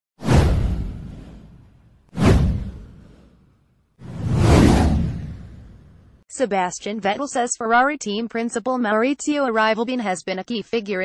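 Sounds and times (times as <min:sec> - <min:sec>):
whoosh with deep boom: 0:00.2 - 0:06.2.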